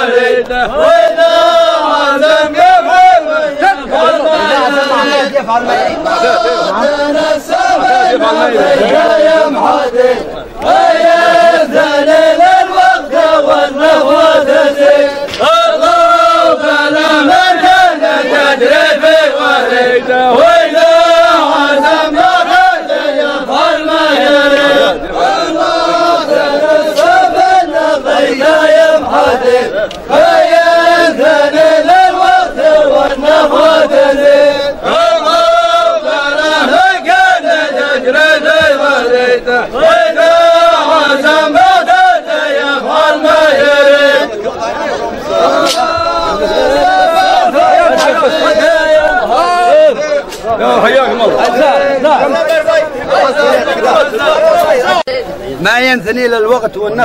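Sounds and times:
men chanting in unison: 0.0 - 55.2.

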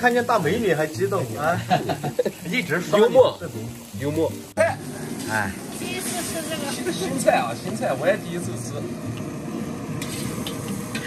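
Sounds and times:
gas wok burner roaring: 0.0 - 11.0.

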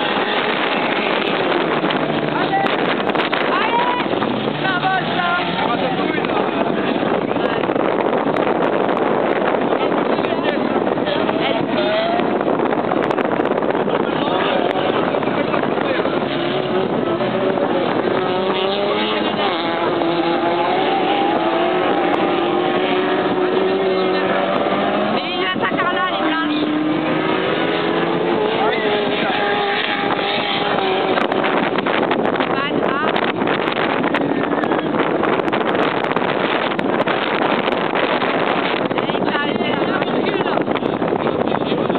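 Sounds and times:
race car engines revving: 0.0 - 41.9
wind noise on microphone: 0.0 - 41.9.

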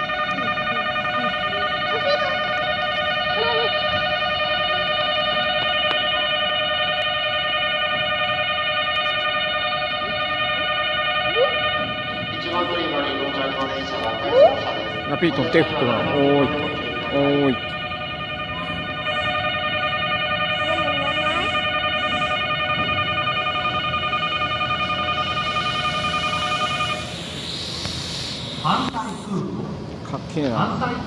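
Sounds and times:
electronic warning bell ringing: 0.0 - 29.4
voices: 0.1 - 3.9, 12.3 - 19.5, 20.5 - 22.4, 28.6 - 31.0.

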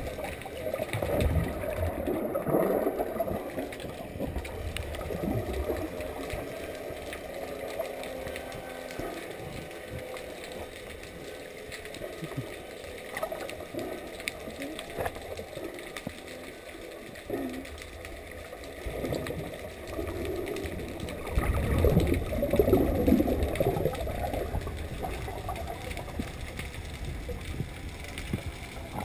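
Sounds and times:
faint clicks: 0.0 - 29.0
underwater bubbling and rushing water: 0.0 - 29.0.

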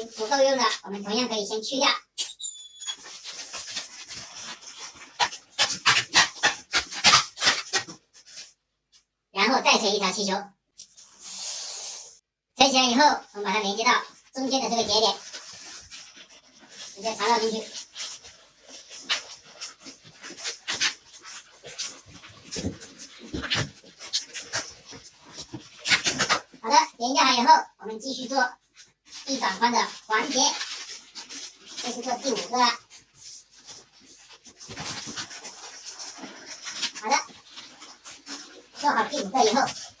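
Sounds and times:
balloon rubbing and squeaking: 0.0 - 1.2, 2.0 - 8.6, 13.9 - 27.0, 28.8 - 40.0.

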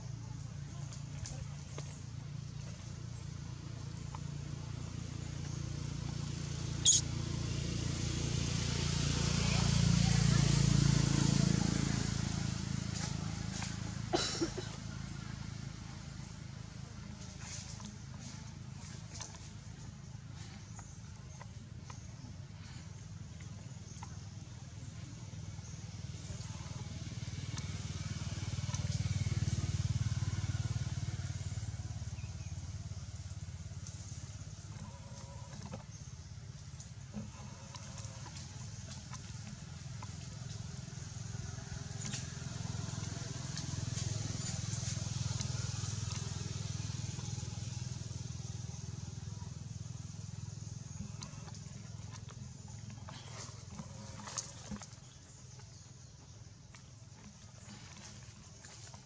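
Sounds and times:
traffic rumble: 0.0 - 59.0.

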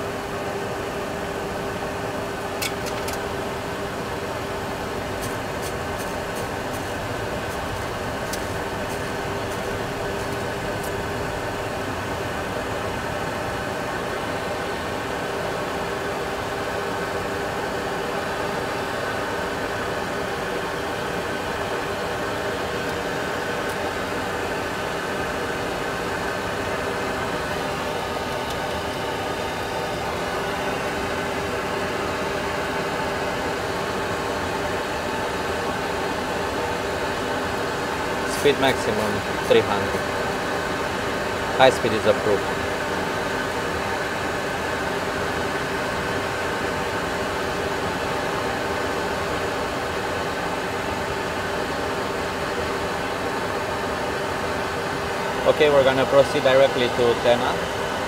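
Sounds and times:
jet engine and airflow hum: 0.0 - 58.0.

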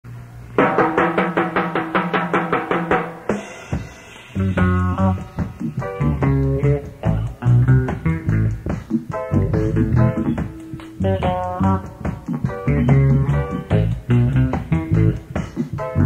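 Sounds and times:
reggae band playing: 0.6 - 16.0.

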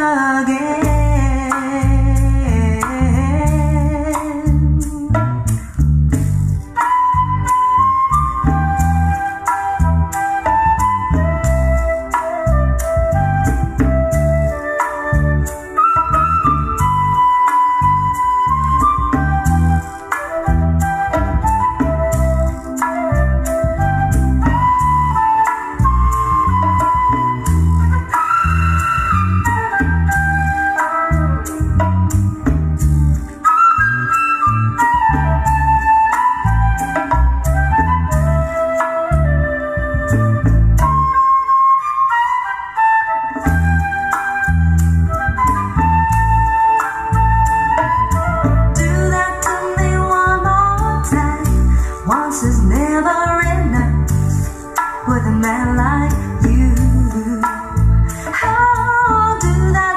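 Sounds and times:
pop song over loudspeakers: 0.0 - 5.7, 48.6 - 59.9
bass and drum beat: 0.8 - 41.2, 43.4 - 59.9.

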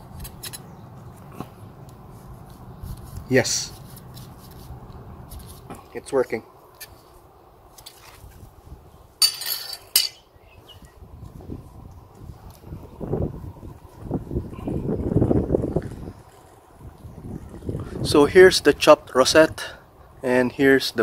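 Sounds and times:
low rustling of plant handling: 1.0 - 6.0.

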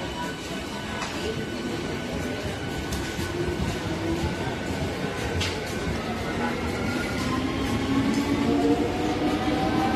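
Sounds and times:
train hum: 0.0 - 9.9.

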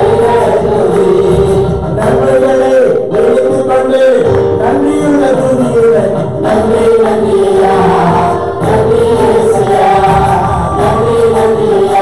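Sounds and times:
backing singers: 0.0 - 12.0
man singing into a microphone: 0.0 - 12.0
musical accompaniment: 0.0 - 12.0.

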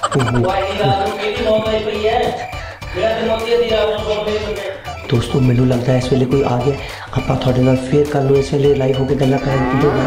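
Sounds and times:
man's low voice in held tones: 9.1 - 10.0.

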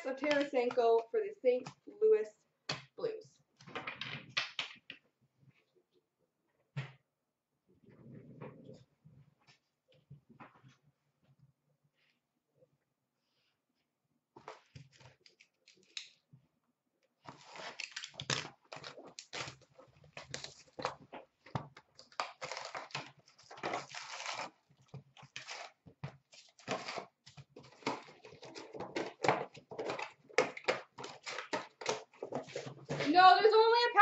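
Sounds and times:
foil card packs crinkling: 22.0 - 24.6.

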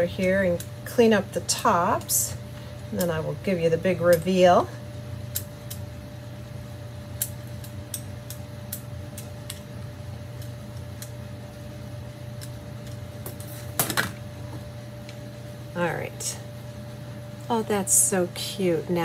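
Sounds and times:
steady background hum: 0.0 - 19.0.

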